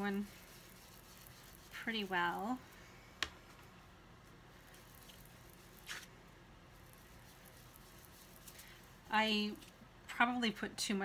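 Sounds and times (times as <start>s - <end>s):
foam tool dabbing on cardstock: 0.0s - 2.6s.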